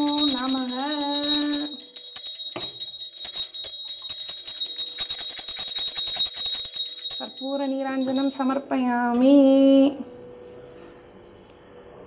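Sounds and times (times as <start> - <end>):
woman chanting: 0.0 - 1.8, 7.2 - 10.1
hand bell ringing: 0.0 - 8.9.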